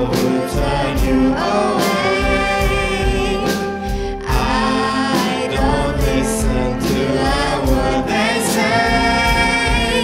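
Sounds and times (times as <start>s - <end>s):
singers with live band: 0.0s - 10.0s.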